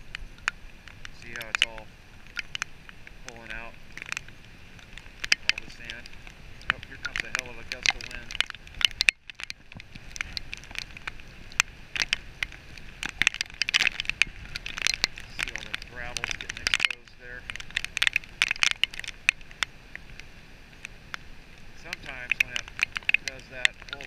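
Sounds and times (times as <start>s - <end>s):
gusting wind: 0.0s - 24.0s
rain striking microphone: 0.0s - 24.0s.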